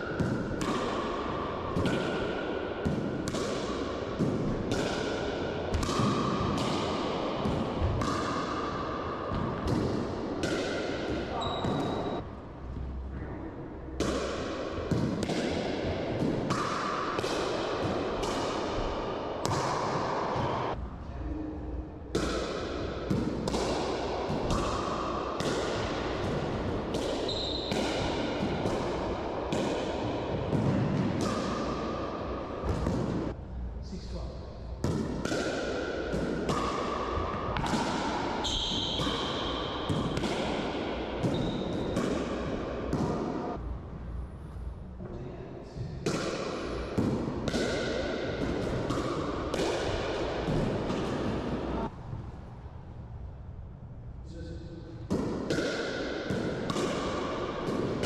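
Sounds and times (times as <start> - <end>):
ball bouncing off floor and walls: 1.7 - 12.2, 32.6 - 33.4, 34.8 - 43.4, 45.9 - 51.9, 55.1 - 58.0.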